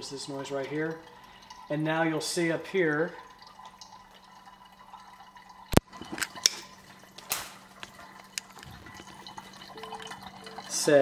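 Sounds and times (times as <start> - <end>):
water dripping into glass pitcher: 0.0 - 11.0.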